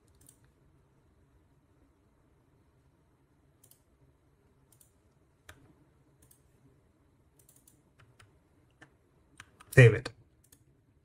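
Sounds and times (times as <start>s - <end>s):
computer key clicks: 0.1s - 0.5s, 3.6s - 3.9s, 4.7s - 6.4s, 7.4s - 9.8s.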